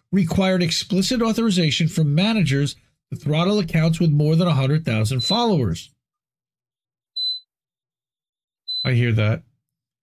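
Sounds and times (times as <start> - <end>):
high-pitched electronic beep: 5.2 - 5.5, 7.2 - 7.5, 8.7 - 9.0.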